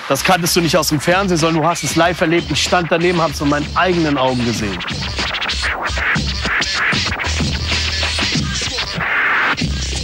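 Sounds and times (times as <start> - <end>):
hip-hop beat: 0.0 - 10.0
vinyl record scratching: 0.0 - 10.0.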